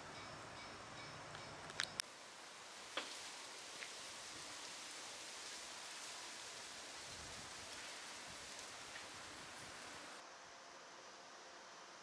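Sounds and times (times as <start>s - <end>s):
leaves rustling in breeze: 0.0s - 12.0s
wind rumble on microphone: 7.0s - 9.9s.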